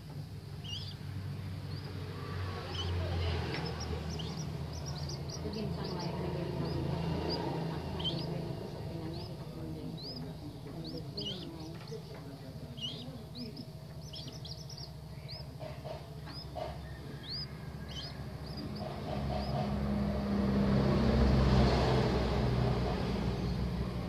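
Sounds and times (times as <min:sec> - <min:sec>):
chicks peeping: 0:00.0 - 0:20.6
motor vehicle passing: 0:00.0 - 0:24.0.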